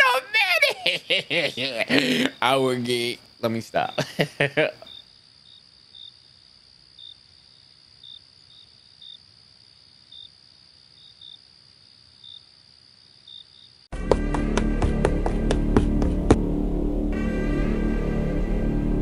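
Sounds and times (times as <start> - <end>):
crickets chirping: 0.0 - 13.9
dramatic music with percussive hits: 14.0 - 19.0.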